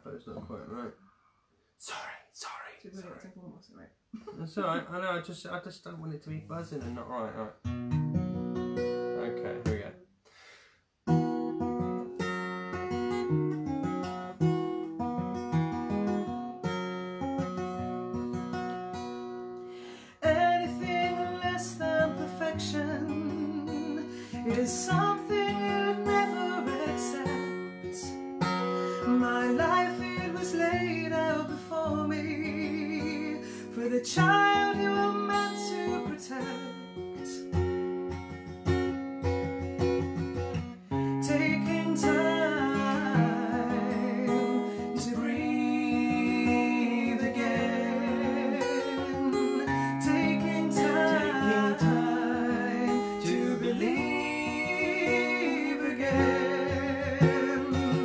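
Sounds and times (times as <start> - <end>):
acoustic guitar strumming: 6.5 - 10.0, 11.0 - 58.0
person singing: 20.1 - 37.5, 41.2 - 58.0.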